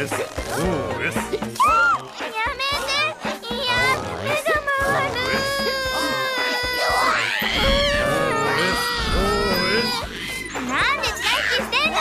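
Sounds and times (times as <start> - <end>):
background music: 0.0 - 12.0
high voices shouting together: 4.7 - 12.0.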